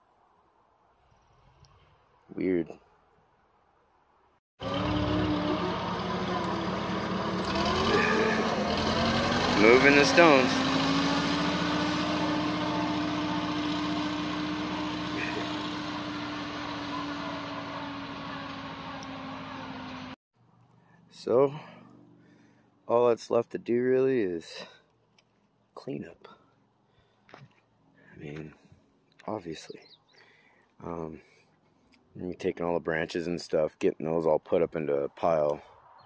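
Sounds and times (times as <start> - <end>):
wheel loader diesel engine running: 4.6 - 20.2.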